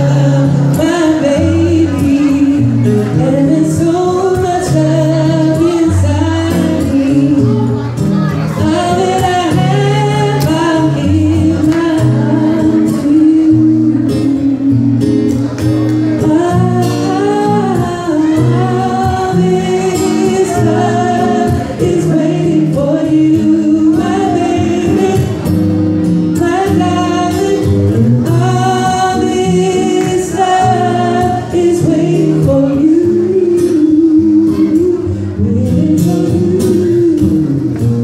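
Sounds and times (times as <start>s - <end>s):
acoustic guitar: 0.0s - 38.0s
man singing into a microphone: 0.0s - 38.0s.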